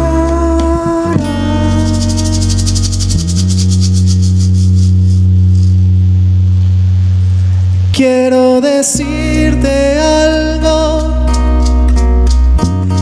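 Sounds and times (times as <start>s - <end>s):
shaker rhythm: 0.0s - 5.9s, 9.0s - 13.0s
acoustic guitar: 0.0s - 6.5s, 7.9s - 13.0s
held bass note: 0.0s - 13.0s.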